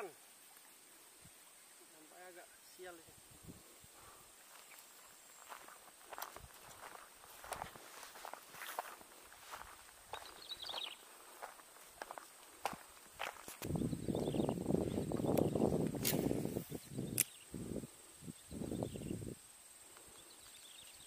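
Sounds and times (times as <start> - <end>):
footsteps on dirt and grass: 4.0 - 16.7.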